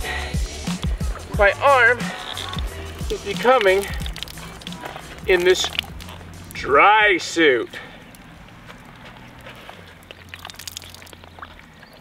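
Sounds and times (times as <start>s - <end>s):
water dripping from glove: 2.2s - 6.7s, 7.6s - 12.0s.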